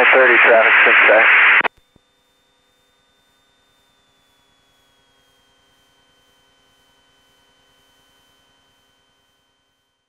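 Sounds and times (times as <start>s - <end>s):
high whine: 0.0s - 1.7s.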